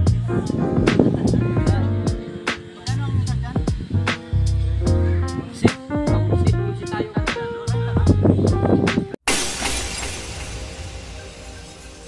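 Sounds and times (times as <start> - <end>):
background music with beat: 0.0 - 9.2
glass shattering: 9.3 - 12.0.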